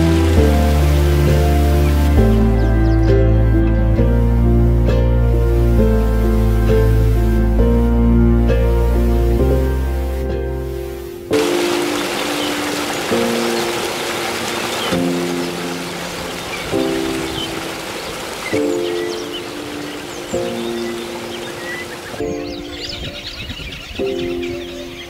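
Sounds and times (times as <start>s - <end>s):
stream flowing over rocks: 0.0s - 3.6s, 11.3s - 22.8s
birds chirping: 0.0s - 4.8s, 11.3s - 25.0s
background music of held chords: 0.0s - 25.0s.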